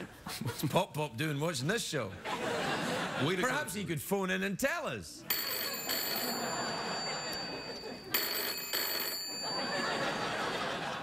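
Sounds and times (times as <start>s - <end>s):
studio audience laughter: 2.2s - 3.7s, 6.1s - 8.2s, 9.4s - 11.0s
telephone bell ringing: 5.2s - 11.0s.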